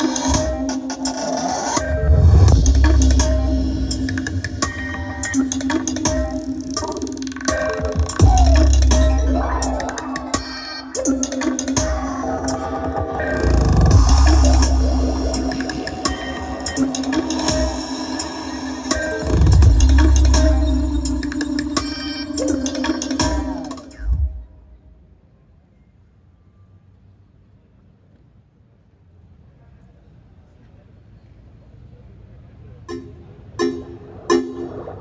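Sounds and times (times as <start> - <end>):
loud music over speakers: 0.0 - 24.4, 32.9 - 35.0
deep bass from subwoofers: 1.8 - 10.4, 11.8 - 24.5.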